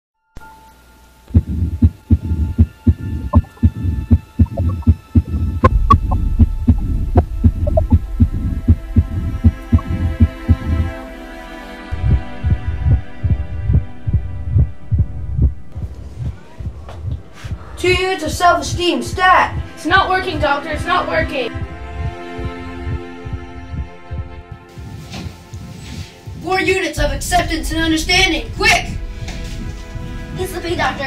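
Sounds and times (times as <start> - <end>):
heartbeat thumps: 1.3 - 11.1, 11.9 - 20.6, 21.5 - 25.1.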